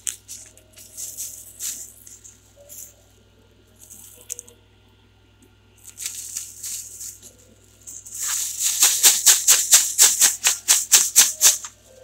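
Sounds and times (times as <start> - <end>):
plastic packaging crinkling: 0.0 - 3.0, 3.7 - 4.6, 5.8 - 12.0.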